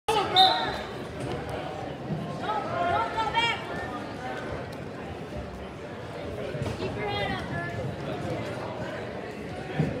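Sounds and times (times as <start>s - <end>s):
referee's whistle: 0.1s - 0.9s.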